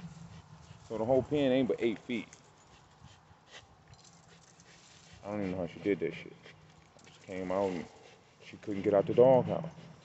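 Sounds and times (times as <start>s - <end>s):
dog breathing: 2.6s - 10.0s.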